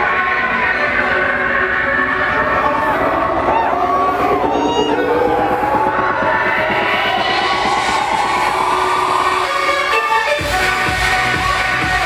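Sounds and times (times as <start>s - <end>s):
rising pitched sound: 0.0s - 11.8s
electronic dance music: 0.0s - 12.0s.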